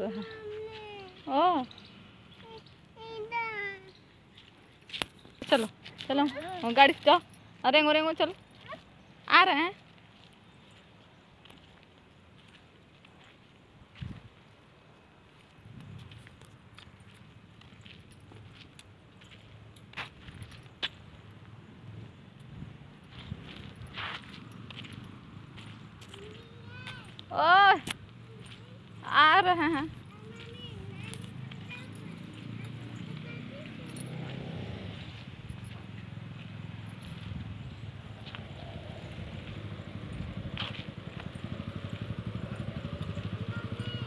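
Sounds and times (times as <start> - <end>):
footsteps on dirt: 0.0 - 2.9, 3.8 - 43.4
small engine running: 38.3 - 44.0.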